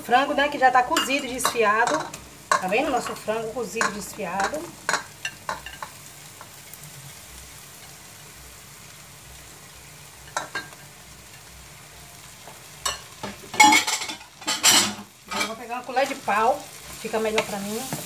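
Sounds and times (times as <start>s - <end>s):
sauce sizzling faintly: 0.0s - 18.0s.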